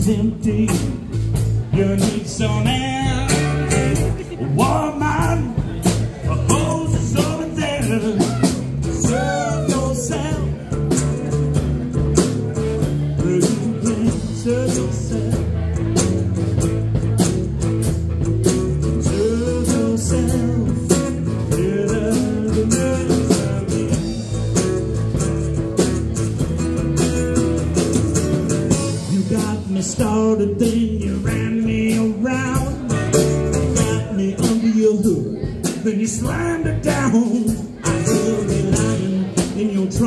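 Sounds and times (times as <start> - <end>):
country-rock band playing: 0.0 - 40.0
steady drum beat: 0.0 - 40.0.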